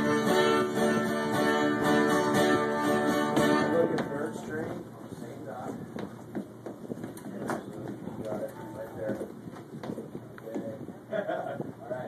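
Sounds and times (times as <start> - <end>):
knocks and shuffles: 2.0 - 11.8.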